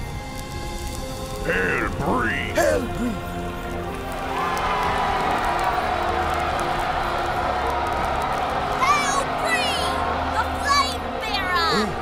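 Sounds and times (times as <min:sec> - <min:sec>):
music: 0:00.0 - 0:12.0
crowd cheering: 0:03.8 - 0:12.0.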